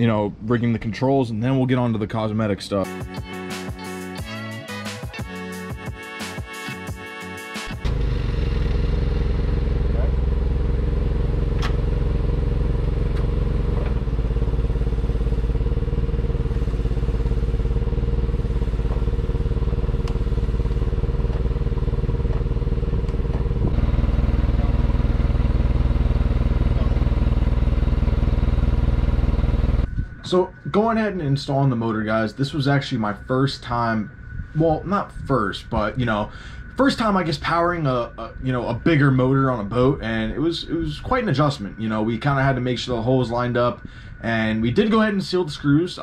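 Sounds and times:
forklift engine drone: 7.6s - 46.0s.

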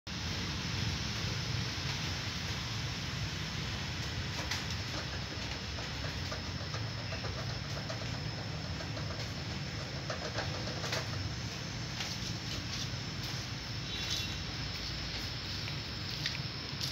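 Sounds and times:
background hiss: 0.1s - 16.9s.

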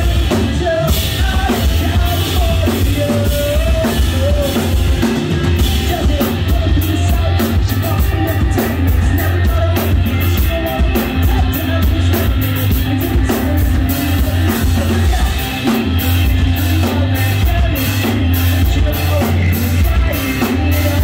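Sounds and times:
person singing: 0.0s - 21.0s
rock band playing live: 0.0s - 21.0s.

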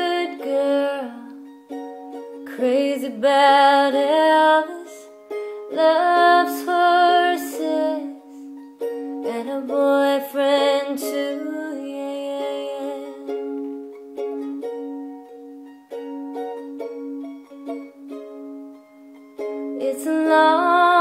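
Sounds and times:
plucked string instrument: 0.0s - 21.0s.

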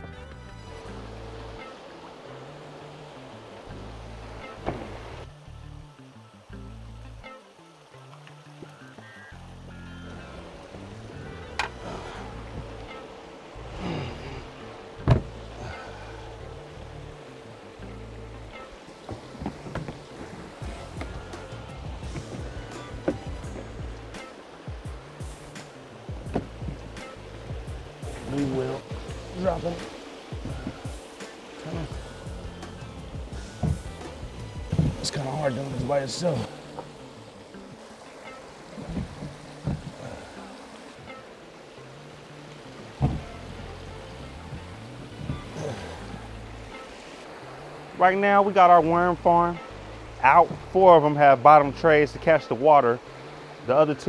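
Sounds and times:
background music with bass line: 0.0s - 54.0s.

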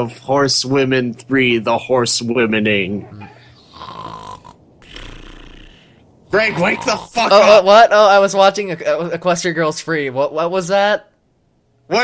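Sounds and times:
man snoring: 3.2s - 7.2s.

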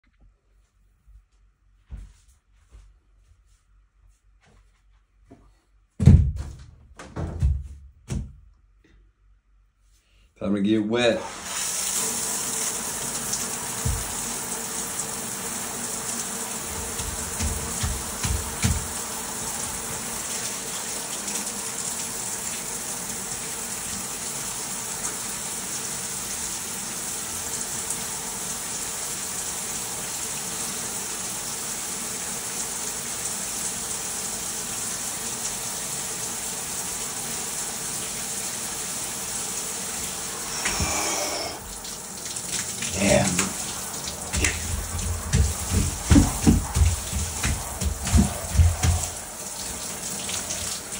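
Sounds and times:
shower spraying and splashing: 11.2s - 50.9s
dull low thumps: 44.3s - 49.3s.

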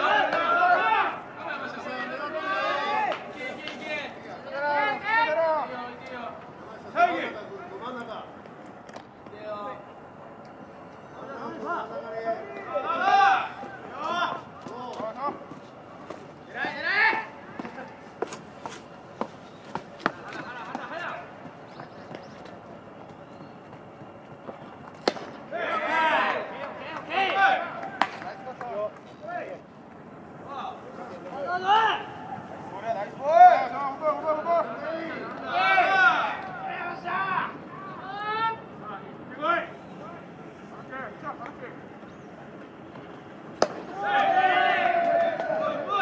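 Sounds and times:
voices calling out: 0.0s - 46.0s.

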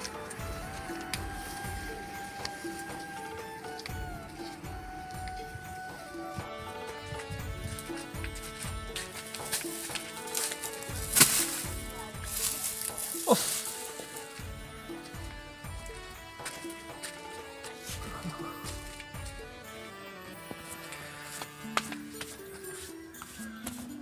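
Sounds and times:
background music with steady beat: 0.0s - 24.0s
dry stalks rustling: 0.0s - 24.0s.

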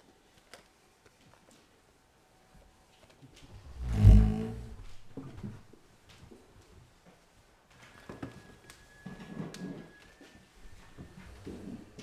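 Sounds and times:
microphone handling thump and rumble: 3.6s - 5.6s.

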